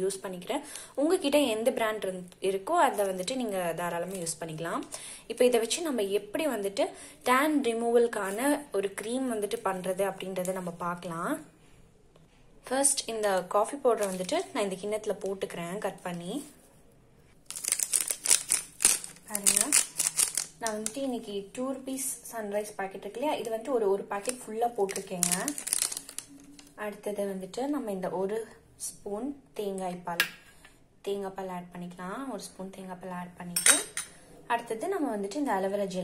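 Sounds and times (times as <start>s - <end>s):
coffee sachet crinkling: 14.0s - 14.6s, 17.4s - 21.0s, 24.2s - 26.8s
metal spoon clinking on bowl: 33.6s - 34.1s.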